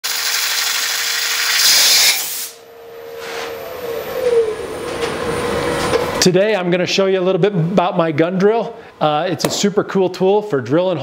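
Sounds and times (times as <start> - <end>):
compressed air hissing: 1.4 - 2.6
steady hum: 1.7 - 9.8.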